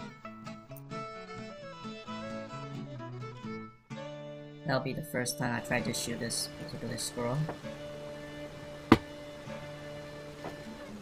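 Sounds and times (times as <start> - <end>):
guitar background music: 0.0 - 11.0.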